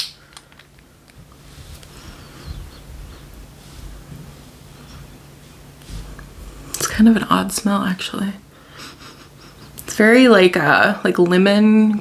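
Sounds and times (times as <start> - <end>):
low hum: 0.1 - 12.0.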